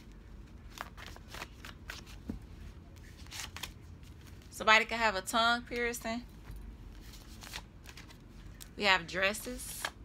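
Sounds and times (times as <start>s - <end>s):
cards being shuffled: 0.0s - 4.5s, 6.9s - 8.7s.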